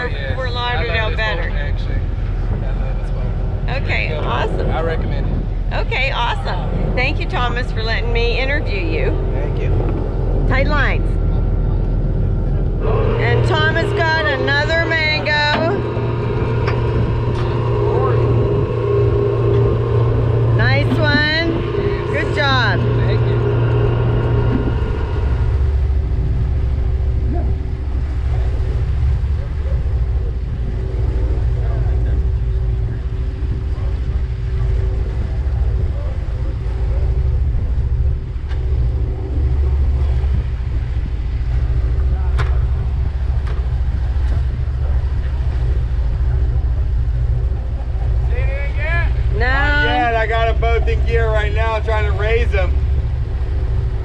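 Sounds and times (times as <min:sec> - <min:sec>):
boat engine droning: 0:00.0 - 0:54.0
rush of boat wake: 0:00.0 - 0:54.0
voices: 0:00.0 - 0:54.0.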